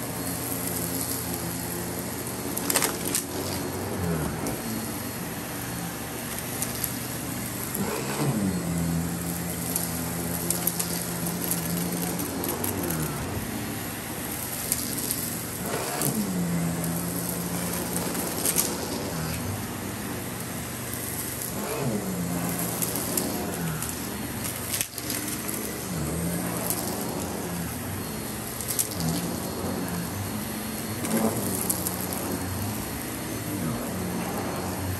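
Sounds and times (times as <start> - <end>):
vacuum cleaner humming: 0.0 - 34.9.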